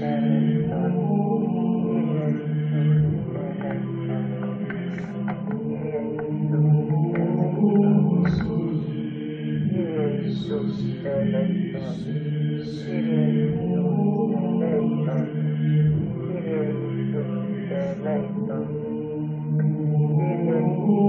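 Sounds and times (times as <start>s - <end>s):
person singing devotional chant: 0.0s - 21.0s.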